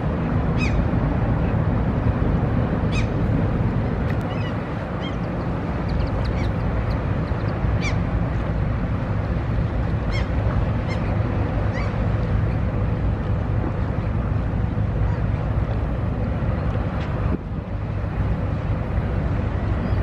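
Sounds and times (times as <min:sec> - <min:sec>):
ship engine rumble: 0:00.0 - 0:20.0.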